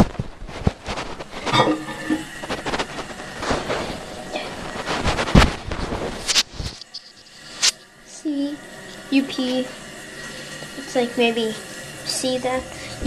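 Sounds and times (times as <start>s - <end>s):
handling knocks and rubbing: 0.0s - 7.1s.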